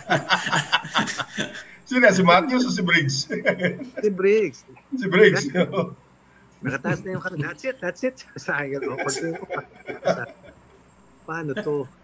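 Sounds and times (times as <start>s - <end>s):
men chuckling and laughing: 0.0s - 5.9s, 6.6s - 7.8s, 8.5s - 10.8s.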